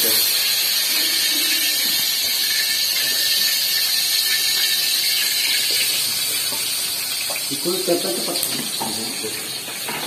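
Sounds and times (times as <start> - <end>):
garlic and shallots sizzling in oil: 0.0 - 10.0.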